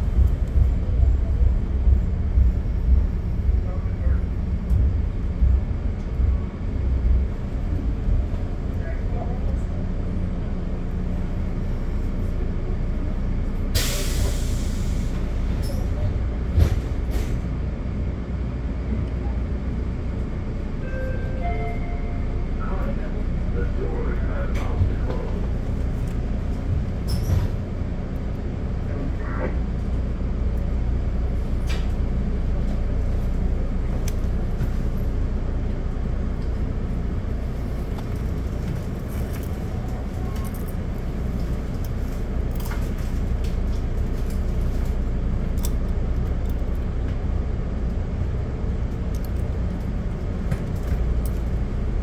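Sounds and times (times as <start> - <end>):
diesel locomotive idling rumble: 0.0 - 52.0.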